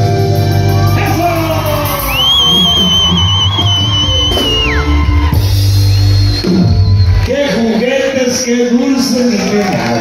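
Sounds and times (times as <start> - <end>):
low bass: 0.0 - 7.8.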